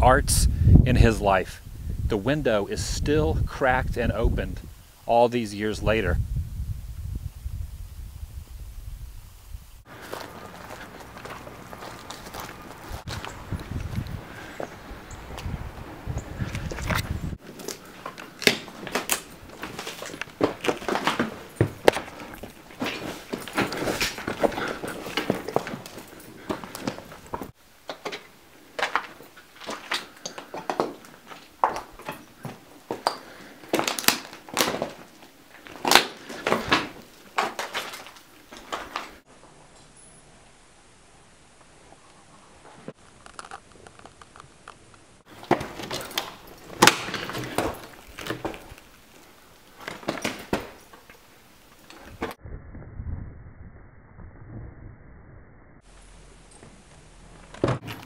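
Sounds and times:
footsteps crunching over debris: 0:09.9 - 0:39.2, 0:45.2 - 0:52.4
low rumble: 0:52.2 - 0:57.6.

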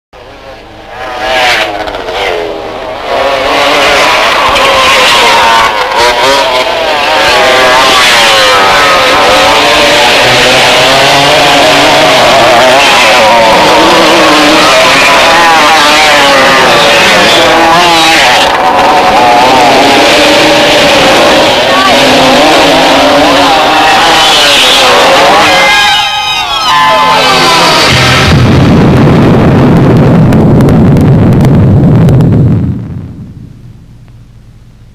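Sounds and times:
dirt bikes revving: 0:01.5 - 0:28.4
low rumble: 0:27.0 - 0:34.9.

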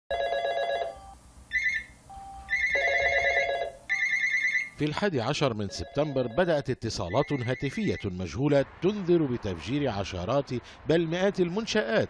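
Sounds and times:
low-pitched telephone ring: 0:00.1 - 0:01.2, 0:02.5 - 0:04.8
high-pitched telephone ring: 0:00.1 - 0:04.8, 0:05.7 - 0:06.5.

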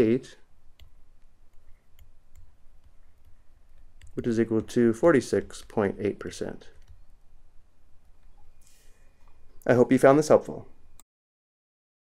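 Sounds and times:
low steady hum: 0:00.0 - 0:11.0
stylus tapping tablet screen: 0:00.7 - 0:05.8.

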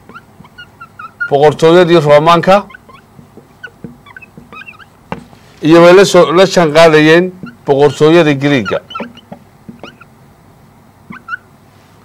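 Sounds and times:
marker squeaking on whiteboard: 0:00.0 - 0:05.6, 0:06.2 - 0:10.1, 0:11.1 - 0:11.5
faint room hiss: 0:00.0 - 0:12.0.

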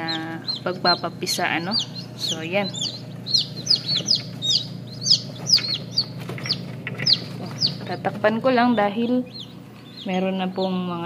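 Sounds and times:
chicks peeping: 0:00.0 - 0:11.0
incubator low hum: 0:00.0 - 0:11.0.

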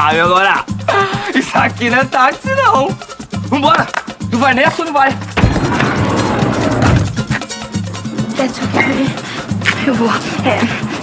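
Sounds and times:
latin background music: 0:00.0 - 0:11.0.

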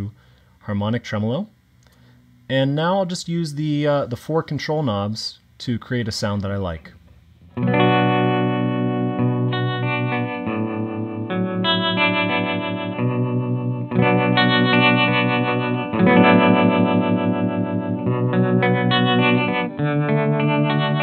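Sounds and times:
electric guitar chords with tremolo: 0:07.3 - 0:21.0.

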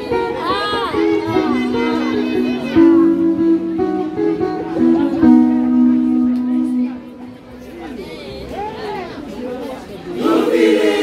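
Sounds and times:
live band with guitars: 0:00.0 - 0:10.0.

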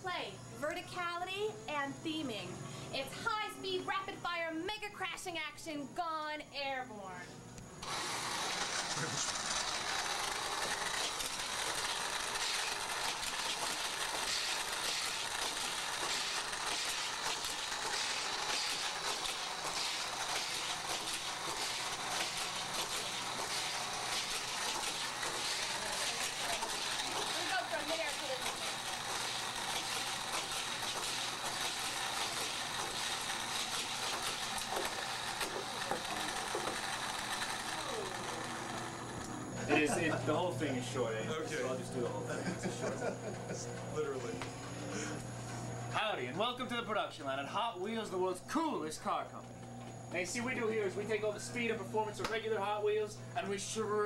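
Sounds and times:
toy cars rattling through track: 0:07.8 - 0:39.2
toy track booster whirring: 0:07.8 - 0:43.1.

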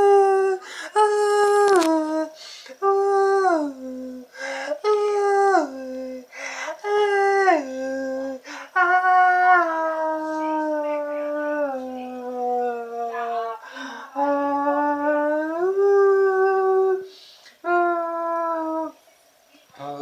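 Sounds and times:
man singing a cappella: 0:00.0 - 0:13.3, 0:14.2 - 0:19.0.

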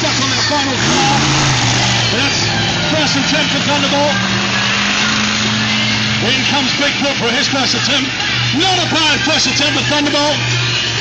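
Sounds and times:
monster truck engine droning: 0:00.0 - 0:11.0.

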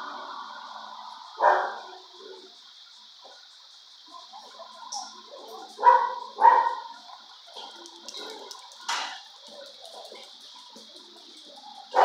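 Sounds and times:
steady high hiss: 0:00.0 - 0:12.0
dog barking: 0:01.4 - 0:02.0, 0:05.8 - 0:07.0.

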